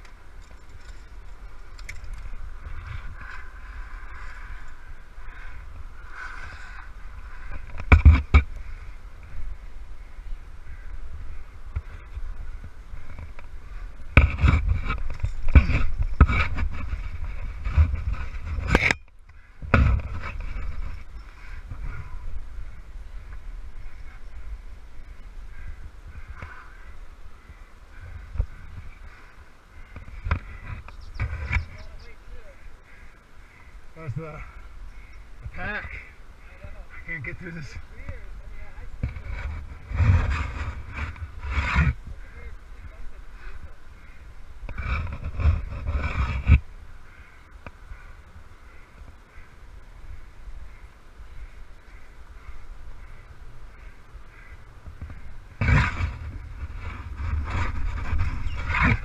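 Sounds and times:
gear scraping and knocking on rock: 0:00.0 - 0:05.4, 0:06.1 - 0:08.6, 0:13.0 - 0:19.1, 0:37.3 - 0:42.0, 0:44.6 - 0:46.7, 0:54.9 - 0:59.0.

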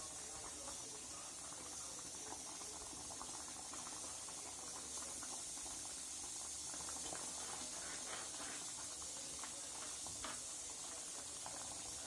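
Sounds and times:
gravy bubbling in a pot: 0:00.0 - 0:12.0
steady high hiss: 0:06.0 - 0:12.0.

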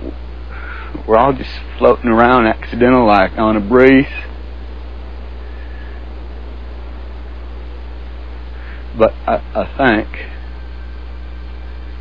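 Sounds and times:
faint even hiss: 0:00.0 - 0:12.0
steady low hum: 0:00.0 - 0:12.0.

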